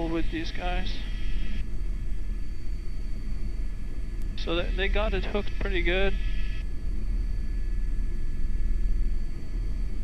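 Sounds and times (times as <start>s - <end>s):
helicopter hovering: 0.0s - 10.0s.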